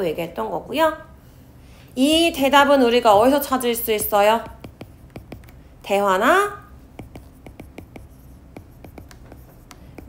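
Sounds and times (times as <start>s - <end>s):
stylus tapping on glass screen: 3.1s - 5.6s, 6.9s - 10.0s.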